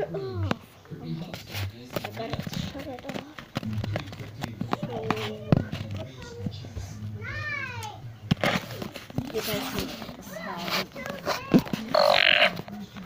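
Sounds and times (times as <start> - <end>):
tablet knocking and rubbing: 1.2 - 6.6, 8.3 - 13.0.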